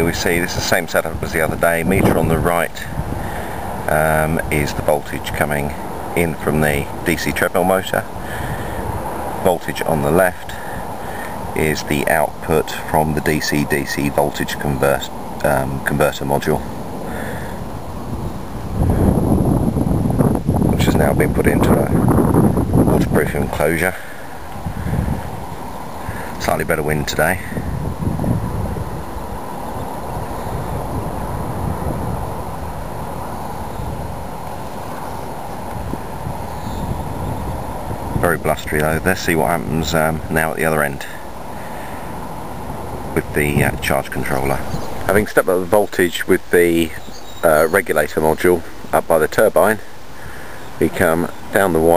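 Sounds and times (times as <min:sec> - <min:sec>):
wind on microphone: 0:00.0 - 0:47.9.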